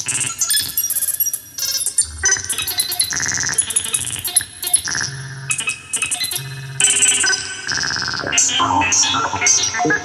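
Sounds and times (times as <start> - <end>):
high synthesizer bleeps: 8.2 - 10.0.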